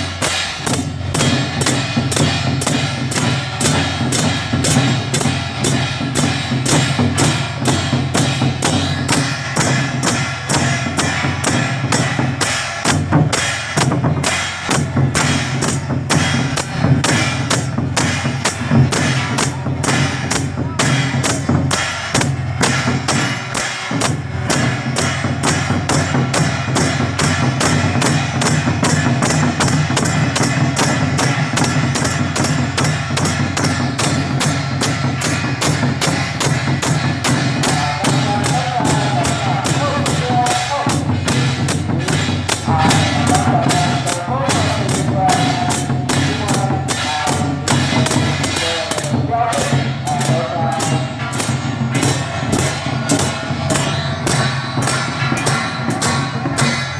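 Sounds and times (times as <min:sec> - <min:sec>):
barrel drums beating: 0:00.0 - 0:56.9
hand cymbals clashing: 0:00.0 - 0:56.9.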